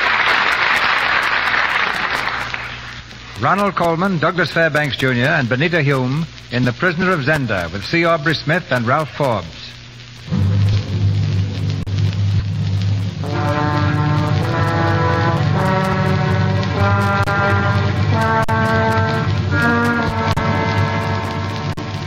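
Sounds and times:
orchestra playing sustained chords: 13.2 - 22.0.

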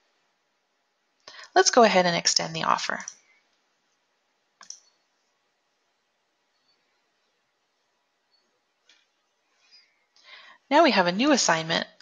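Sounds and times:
computer mouse click: 4.6 - 5.0.

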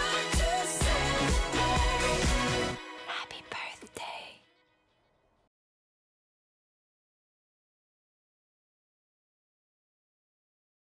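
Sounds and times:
faint whispery voice: 3.1 - 4.4.

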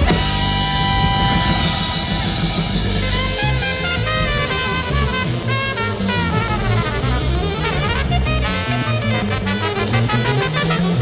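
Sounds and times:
alto saxophone: 0.0 - 11.0
drum kit cymbals: 0.0 - 11.0
trumpet: 0.0 - 11.0
upright bass: 0.0 - 11.0.

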